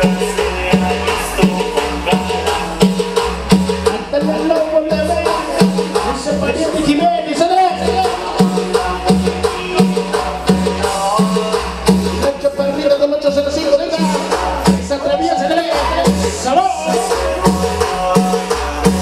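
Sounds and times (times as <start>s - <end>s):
live latin dance music: 0.0s - 19.0s.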